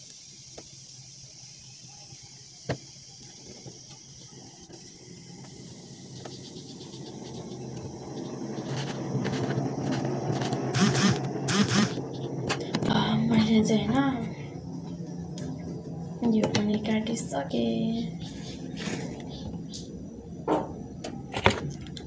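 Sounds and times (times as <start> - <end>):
low background noise: 0.0 - 22.0.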